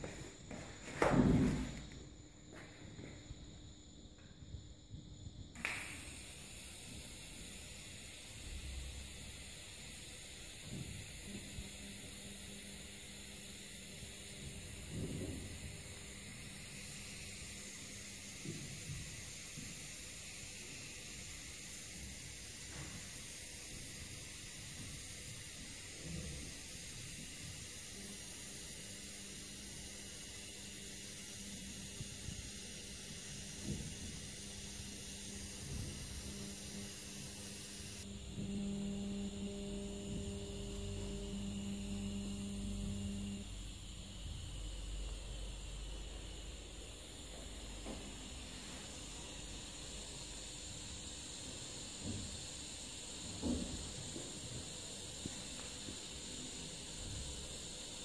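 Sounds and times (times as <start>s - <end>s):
welding arc hissing and humming: 0.0s - 58.0s.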